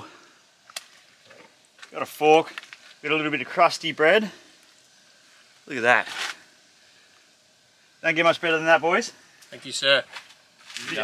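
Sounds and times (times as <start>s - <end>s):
faint outdoor background: 0.0s - 11.0s.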